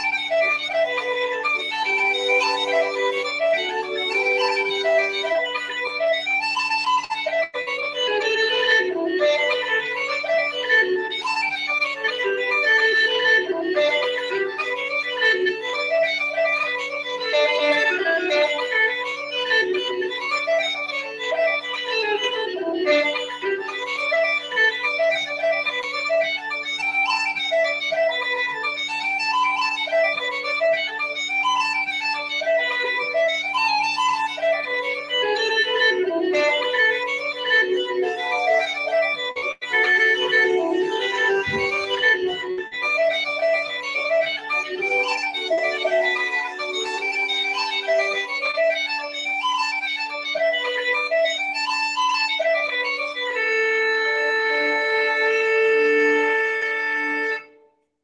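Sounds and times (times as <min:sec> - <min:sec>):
pipe chanter melody: 0:00.0 - 0:57.7.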